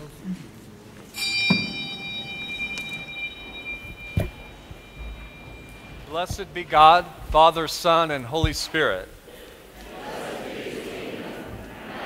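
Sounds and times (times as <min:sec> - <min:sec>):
small bell ringing: 0:01.1 - 0:06.8.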